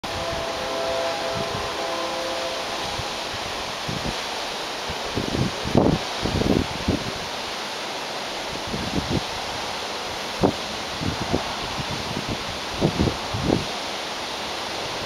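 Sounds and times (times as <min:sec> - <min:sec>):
wind buffeting on microphone: 0:00.0 - 0:07.4, 0:08.5 - 0:13.8
waterfall rushing: 0:00.0 - 0:15.0.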